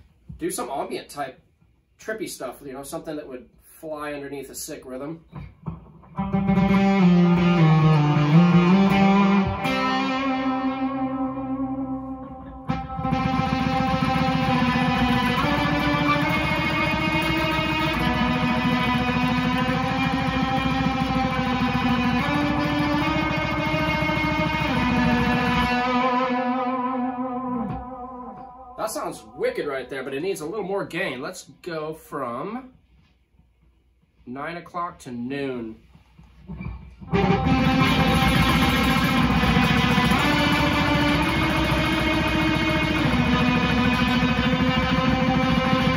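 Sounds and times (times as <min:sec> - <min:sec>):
electric guitar sustained notes: 0:05.6 - 0:30.5, 0:36.6 - 0:45.9.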